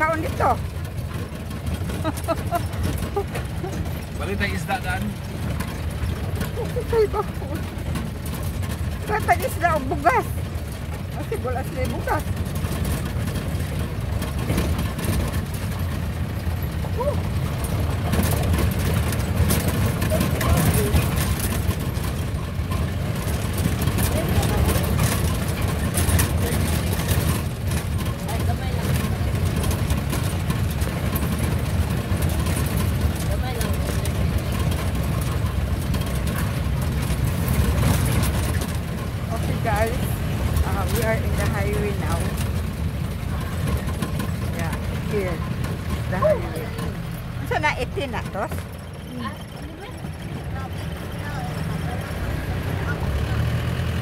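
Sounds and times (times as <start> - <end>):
car engine running: 0.0 - 54.0
road noise on dirt road: 0.0 - 54.0.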